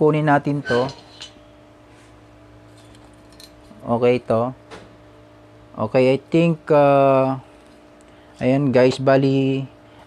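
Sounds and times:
steady low hum: 0.0s - 10.0s
metal stand clinking and rattling: 0.6s - 1.4s, 2.8s - 3.7s.

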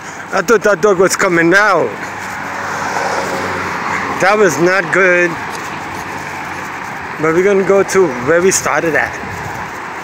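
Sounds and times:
passing cars rushing: 0.0s - 10.0s.

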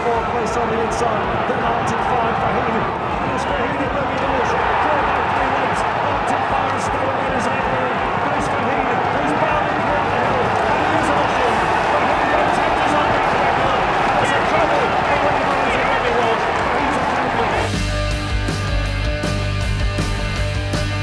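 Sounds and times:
crowd cheering and shouting: 0.0s - 20.2s.

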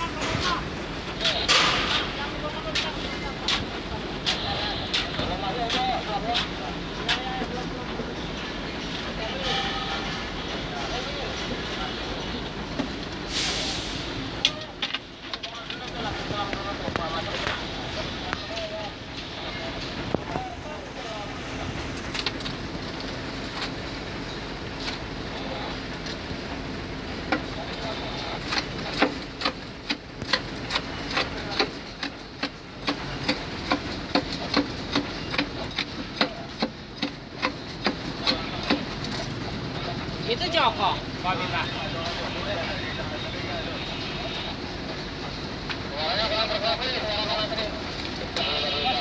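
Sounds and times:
people talking: 0.0s - 22.2s, 23.7s - 36.8s, 37.4s - 49.0s
vehicle engine rumbling: 0.0s - 49.0s.

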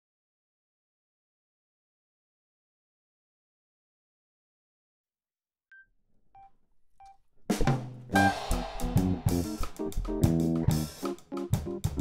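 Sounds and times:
band playing: 8.2s - 11.0s.

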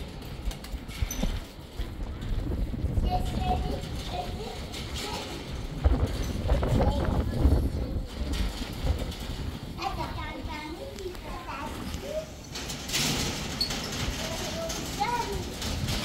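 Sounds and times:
young children talking: 1.9s - 16.0s.

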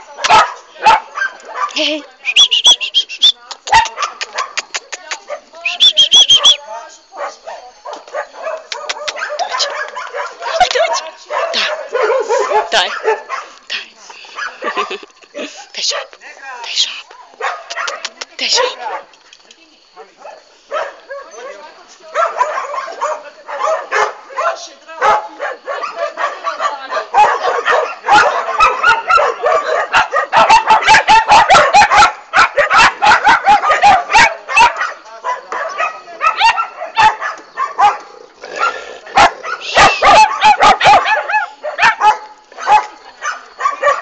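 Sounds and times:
dog barking: 0.2s - 1.8s, 3.7s - 5.5s, 7.2s - 13.6s, 14.4s - 15.0s, 17.2s - 19.1s, 20.0s - 44.0s.

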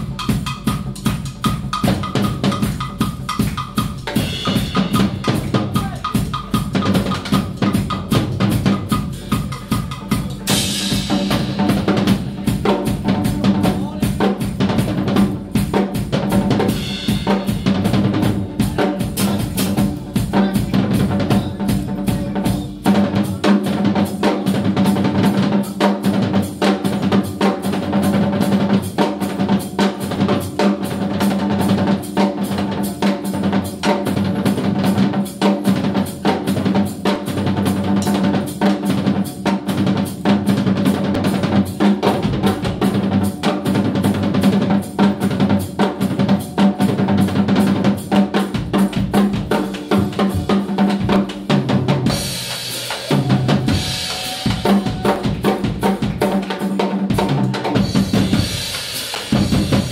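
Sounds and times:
band playing funk rock: 0.0s - 59.9s
drum kit beat: 0.0s - 59.9s.

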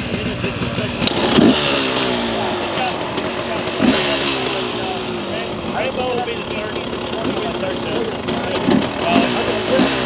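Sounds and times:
dirt bike engines idling: 0.0s - 10.0s
dirt bike throttle revving: 0.0s - 10.0s.

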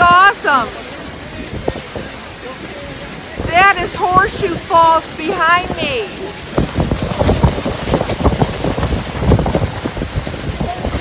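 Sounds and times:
waterfall roar: 0.0s - 11.0s
wind buffeting microphone: 0.0s - 11.0s.

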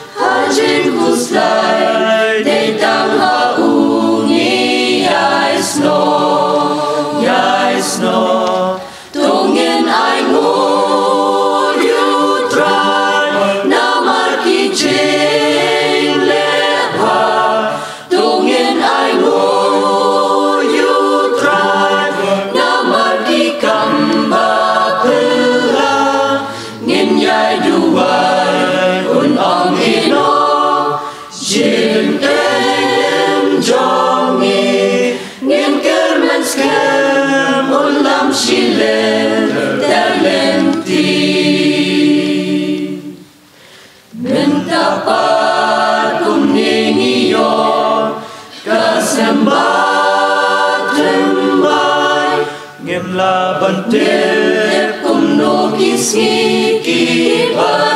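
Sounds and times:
mixed choir singing a cappella: 0.0s - 57.9s.

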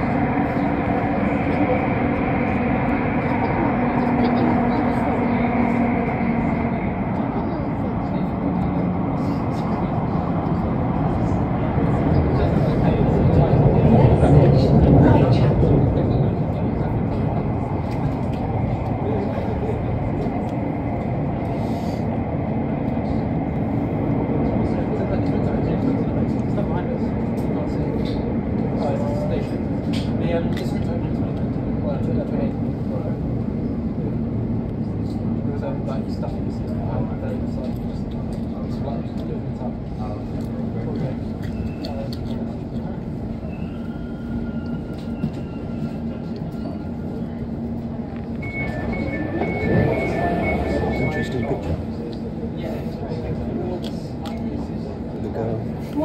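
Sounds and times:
train wheels rumbling on rail: 0.0s - 56.0s.

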